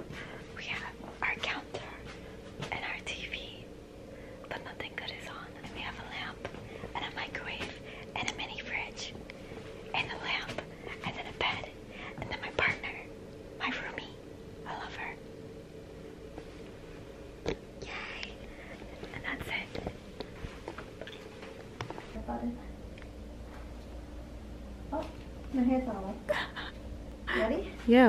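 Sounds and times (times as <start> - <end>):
faint steady hum: 0.0 - 28.0
person whispering: 0.6 - 2.1, 2.7 - 3.7, 4.5 - 9.0, 10.0 - 15.2, 17.8 - 19.8.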